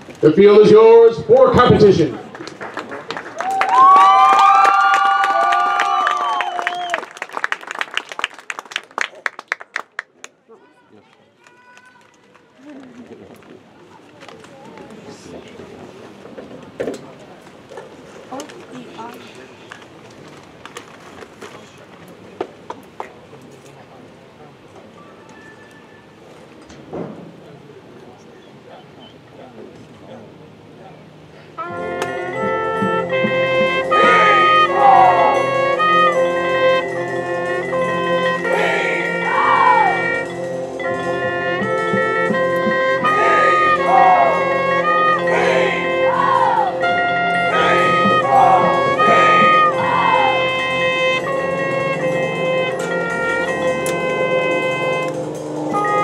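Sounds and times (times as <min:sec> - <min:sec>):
marching band brass chords: 0:00.2 - 0:02.2, 0:31.6 - 0:56.0
sharp percussion hit: 0:31.7 - 0:56.0.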